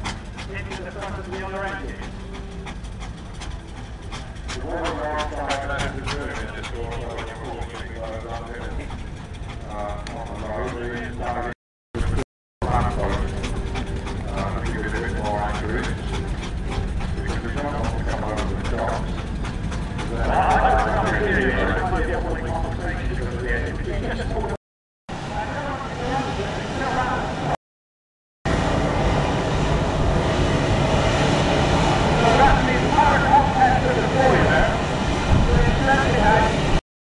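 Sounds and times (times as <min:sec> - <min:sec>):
indistinct voices: 0:00.0 - 0:24.6, 0:31.9 - 0:36.8
steady low rumble: 0:00.0 - 0:24.6, 0:25.2 - 0:27.6, 0:28.5 - 0:36.8.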